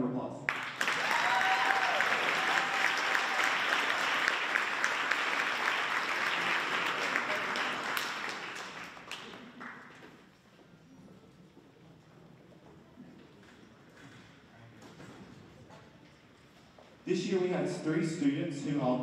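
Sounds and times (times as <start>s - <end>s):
audience applauding: 0.5s - 10.2s.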